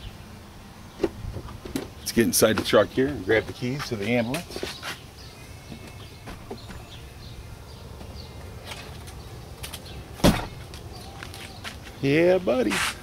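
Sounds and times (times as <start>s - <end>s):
sharp loud thump: 10.2s - 10.6s.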